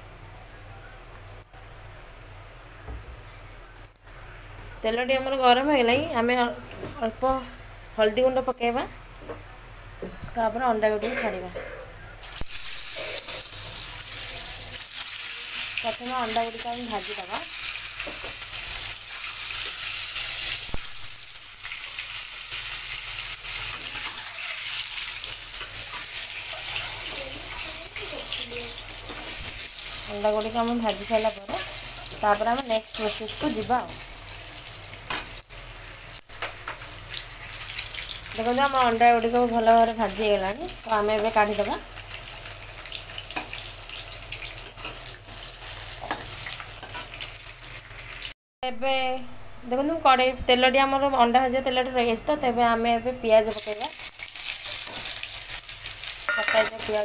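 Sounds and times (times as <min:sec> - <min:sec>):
eggs sizzling in hot oil: 0:12.2 - 0:48.4, 0:53.4 - 0:57.0.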